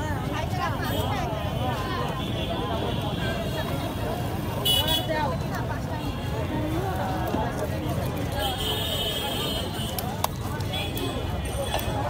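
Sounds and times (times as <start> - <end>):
low traffic rumble: 0.0 - 12.0
people talking: 0.0 - 12.0.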